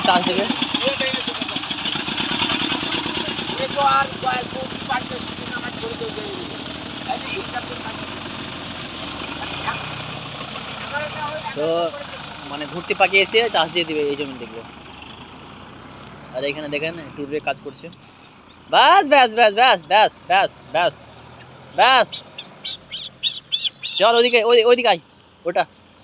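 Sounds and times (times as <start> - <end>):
tractor diesel engine running: 0.0 - 26.0.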